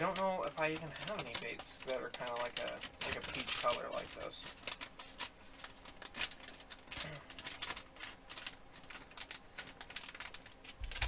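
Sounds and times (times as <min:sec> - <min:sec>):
plastic package crinkling: 0:00.0 - 0:11.0.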